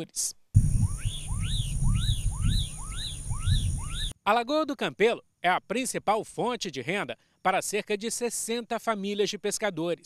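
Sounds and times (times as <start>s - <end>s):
bird calling: 0.8s - 4.2s.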